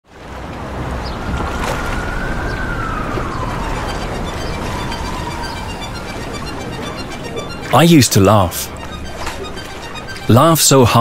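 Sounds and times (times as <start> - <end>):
outdoor noise: 0.0 - 7.7.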